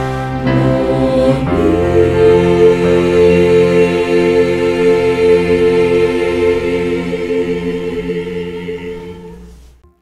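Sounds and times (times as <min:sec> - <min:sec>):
choir singing held chord: 0:00.0 - 0:09.8.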